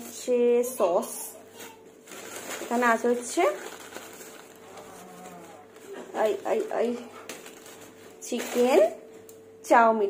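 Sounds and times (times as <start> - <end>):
plastic bags rustling: 1.5 - 9.3.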